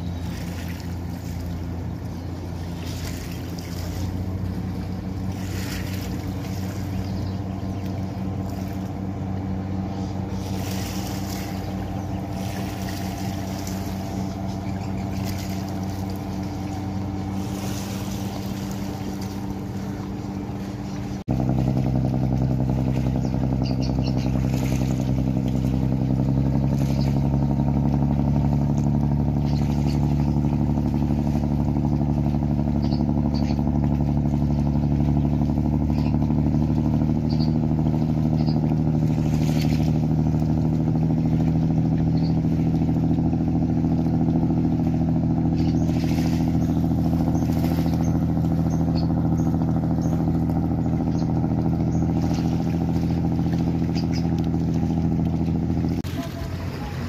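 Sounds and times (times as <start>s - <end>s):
boat diesel engines droning: 0.0s - 57.0s.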